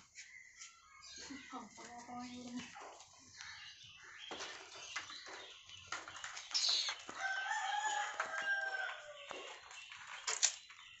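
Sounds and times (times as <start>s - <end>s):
rooster crowing: 7.2s - 9.3s.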